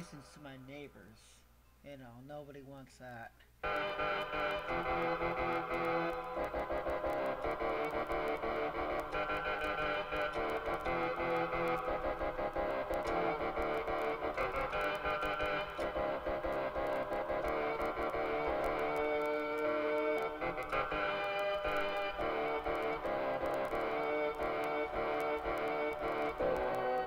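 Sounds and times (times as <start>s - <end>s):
fast even ticking rhythm: 3.6s - 27.0s
keyboard playing held chords: 3.6s - 27.0s.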